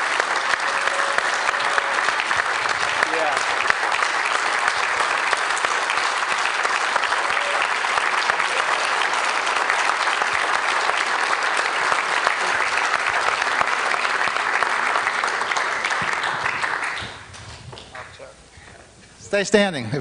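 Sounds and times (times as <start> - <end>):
crowd clapping: 0.0 - 18.3.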